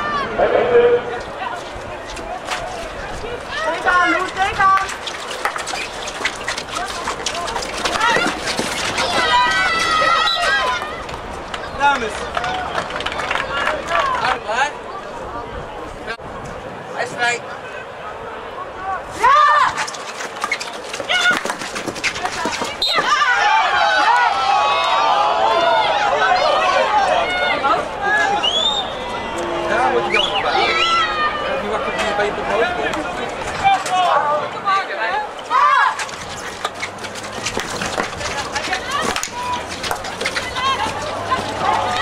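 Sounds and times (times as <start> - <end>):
people shouting and calling out: 6.7 - 12.8, 17.6 - 20.0, 22.2 - 42.0
high whooping calls: 28.2 - 31.9.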